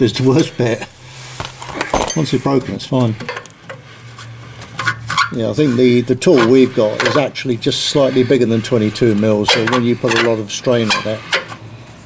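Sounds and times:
steady low hum: 0.0 - 12.0
metal rubbing and scraping: 0.2 - 12.0.

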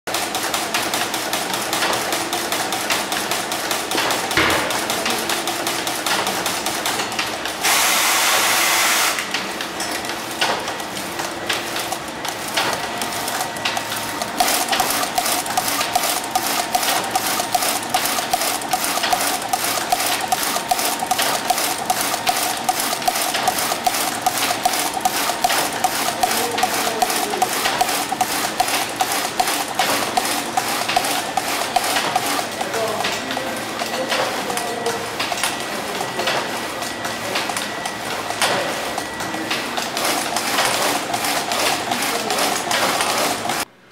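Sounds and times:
steady machine whine: 10.7 - 43.8
knitting machine clatter: 11.8 - 36.5, 37.4 - 43.6.

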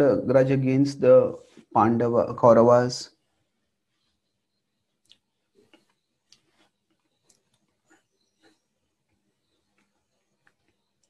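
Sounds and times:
faint clicks: 5.0 - 11.0.

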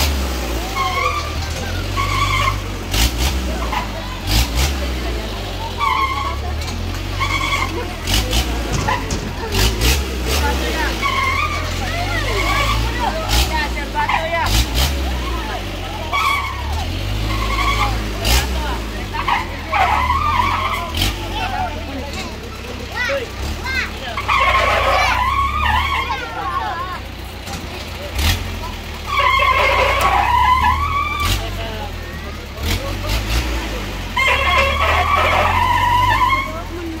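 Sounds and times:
low rumble of ride: 0.0 - 37.0
knocks and rattles from ride: 5.8 - 15.4
riders screaming: 24.2 - 26.7.

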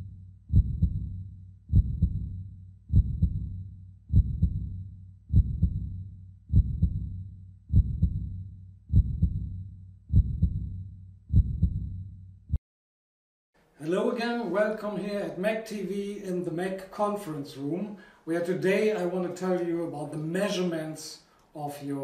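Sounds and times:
heartbeat double thump: 0.0 - 12.6.

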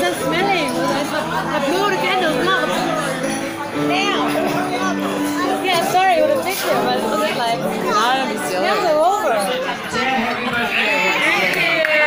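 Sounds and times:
voices chattering and calling out: 0.0 - 12.0.

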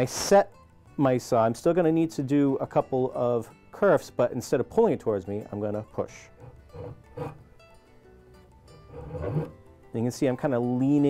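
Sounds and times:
soft background music: 0.0 - 11.0
hand saw rasping into wood: 6.4 - 7.4, 8.8 - 9.6.

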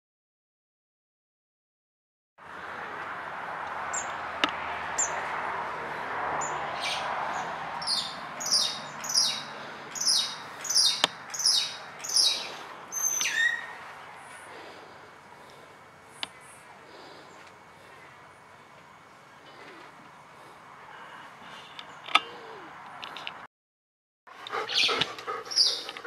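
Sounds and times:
songbird calling high notes: 7.8 - 13.8, 24.7 - 25.9.

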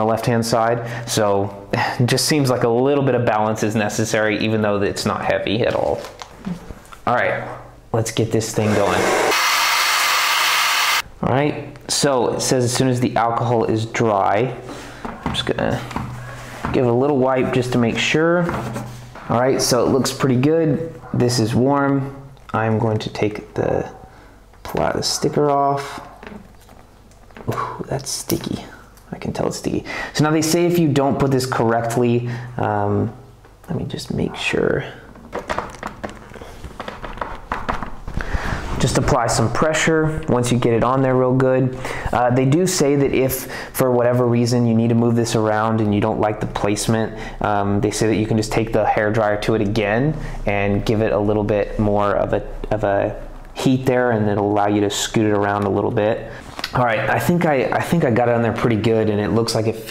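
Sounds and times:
hair dryer running: 8.6 - 11.0.

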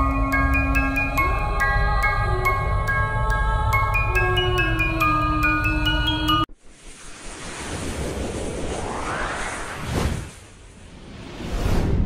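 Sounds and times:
music with mallet tones: 0.0 - 6.5
rushing whoosh: 6.6 - 12.0.

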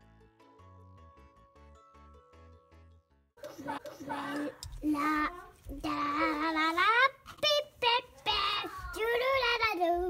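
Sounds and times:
child singing: 3.4 - 6.9.

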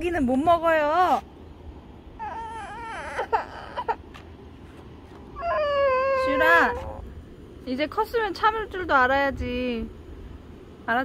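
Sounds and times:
girl whimpering and crying: 2.2 - 4.1, 5.4 - 7.1.

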